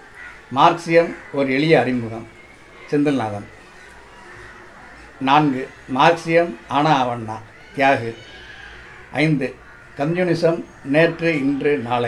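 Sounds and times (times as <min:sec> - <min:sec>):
man speaking: 0:00.5 - 0:02.3, 0:02.9 - 0:03.5, 0:05.2 - 0:08.2, 0:09.2 - 0:12.0.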